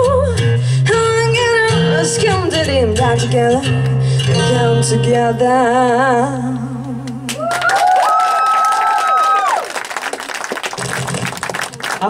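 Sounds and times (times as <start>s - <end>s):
audience applause: 7.3s - 12.0s.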